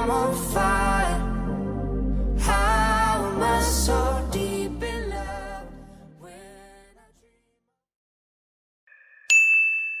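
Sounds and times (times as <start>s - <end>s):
bright chime ringing: 8.9s - 10.0s.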